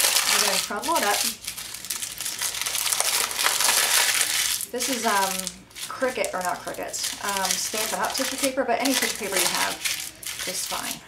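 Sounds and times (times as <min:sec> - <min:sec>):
tissue paper crinkling: 0:00.0 - 0:11.0.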